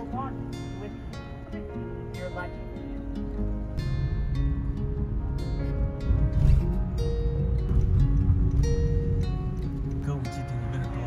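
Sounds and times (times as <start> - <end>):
plucked string notes: 0.0 - 11.0.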